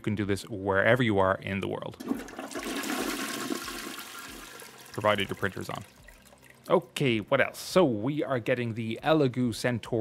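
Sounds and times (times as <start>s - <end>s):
toilet flushing: 2.0s - 6.6s.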